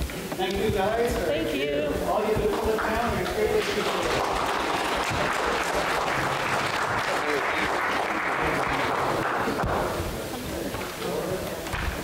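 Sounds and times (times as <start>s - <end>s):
voices: 0.1s - 12.0s
audience applauding: 2.6s - 10.4s.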